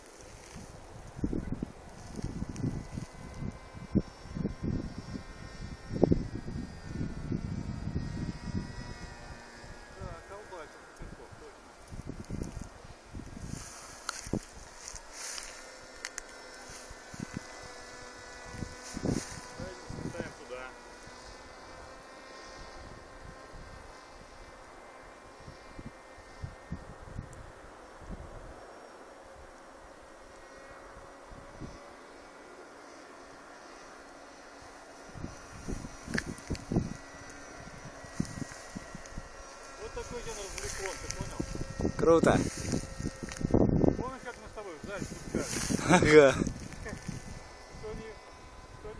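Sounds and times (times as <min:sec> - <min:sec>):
model plane propeller buzzing: 0:00.0 - 0:48.9
wind buffeting microphone: 0:00.3 - 0:28.6, 0:30.5 - 0:32.1, 0:34.3 - 0:48.9.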